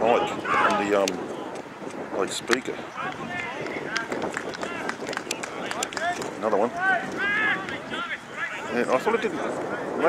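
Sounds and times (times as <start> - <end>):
footballers shouting: 0.0 - 1.6, 2.5 - 10.0.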